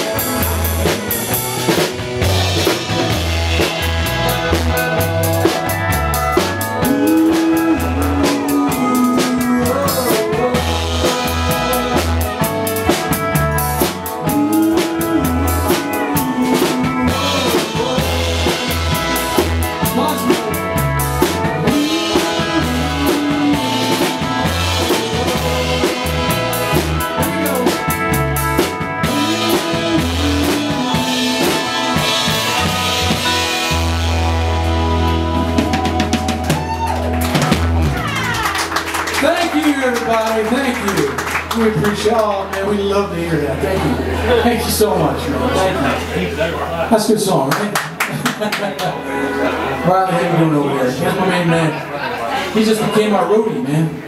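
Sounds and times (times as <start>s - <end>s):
drum kit with rimshots: 0.0s - 42.6s
country band playing: 0.0s - 54.0s.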